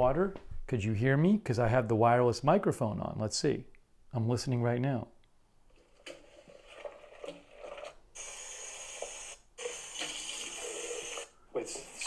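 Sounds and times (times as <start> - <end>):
running tap water: 6.6 - 12.0.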